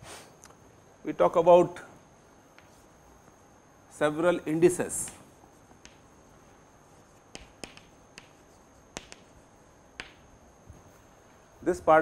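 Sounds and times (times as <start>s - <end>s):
chalk tapping on chalkboard: 2.5s - 2.9s, 4.9s - 6.2s, 6.8s - 10.3s.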